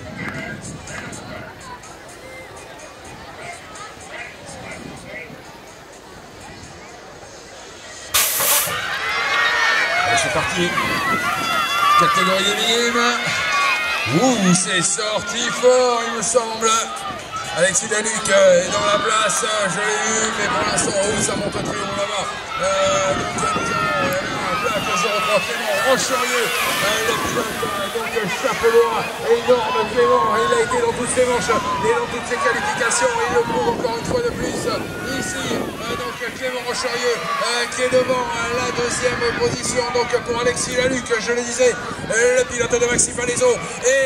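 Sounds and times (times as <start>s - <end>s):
crowd shouting and cheering: 0.0s - 44.0s
outdoor background noise: 0.0s - 44.0s
start gate hissing release: 8.2s - 8.8s
commentator talking: 11.7s - 44.0s.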